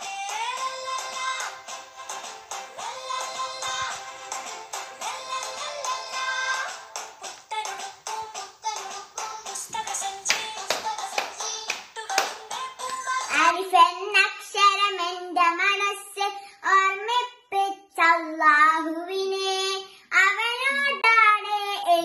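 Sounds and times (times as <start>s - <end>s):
girl singing unaccompanied: 0.0s - 1.7s, 2.7s - 6.8s, 7.5s - 22.0s
music with sharp rhythmic beat: 0.0s - 13.3s.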